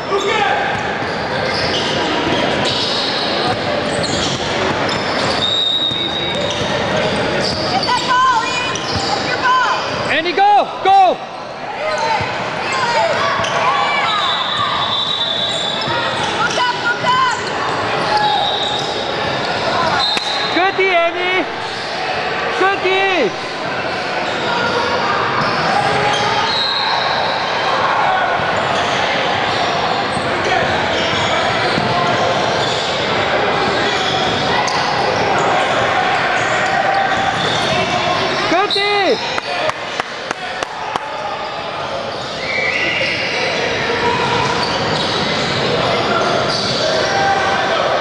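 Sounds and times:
sneakers squeaking: 0:00.0 - 0:10.3, 0:11.2 - 0:20.6, 0:23.4 - 0:40.0, 0:41.3 - 0:47.8
children and spectators voices: 0:00.0 - 0:48.0.

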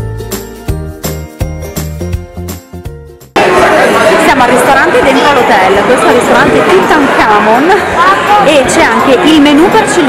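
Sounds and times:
background music: 0:00.0 - 0:03.9
chatter in a dining room: 0:03.4 - 0:10.0.

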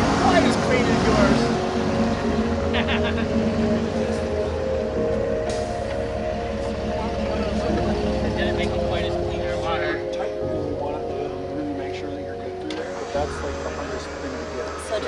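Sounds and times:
background music with sustained chords: 0:00.0 - 0:15.0
car engine running at low revs: 0:00.0 - 0:15.0
indistinct voices: 0:00.0 - 0:15.0.

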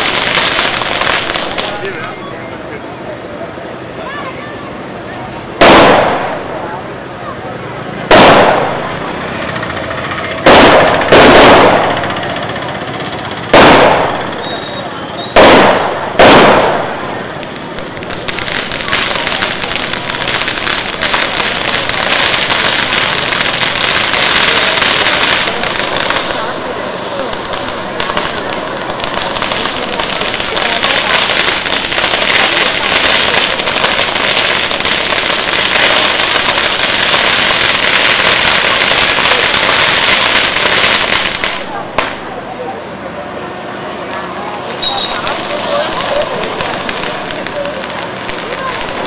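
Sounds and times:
firecrackers crackling: 0:00.0 - 0:49.0.

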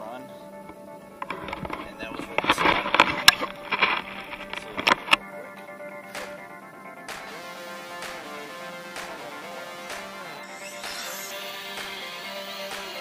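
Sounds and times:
electronic background music: 0:00.0 - 0:13.0
rc car speeding past: 0:09.8 - 0:13.0.

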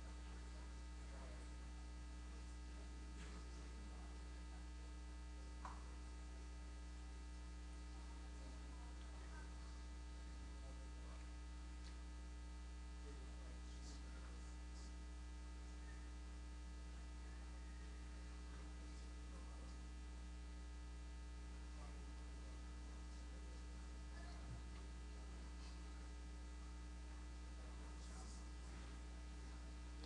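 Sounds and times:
faint electrical mains hum: 0:00.0 - 0:30.0.

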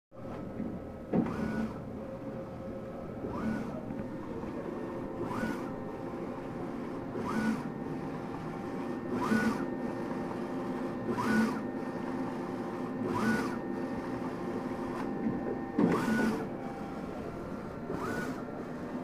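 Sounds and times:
machine hum: 0:00.2 - 0:19.0
printer carriage sweeping: 0:01.1 - 0:01.8, 0:06.8 - 0:19.0.

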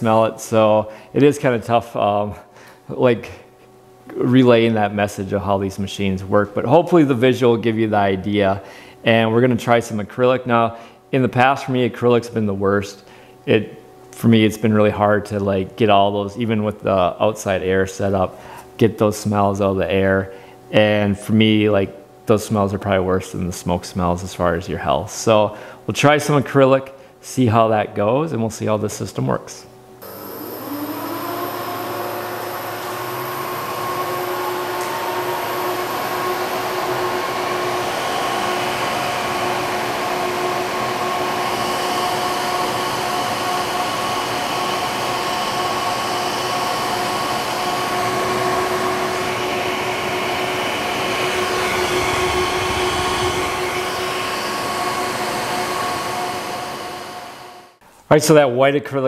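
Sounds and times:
extraction fans rushing and humming: 0:30.0 - 0:57.8.

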